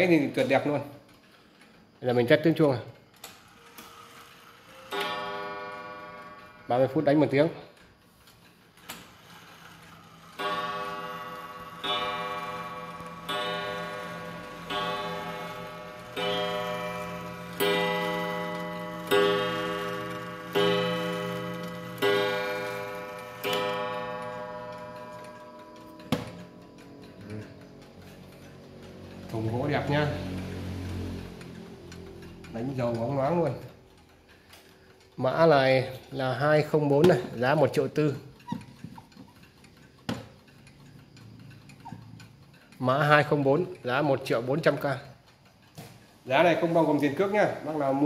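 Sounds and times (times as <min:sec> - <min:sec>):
wall clock striking a gong: 0:04.6 - 0:07.5, 0:10.2 - 0:33.6.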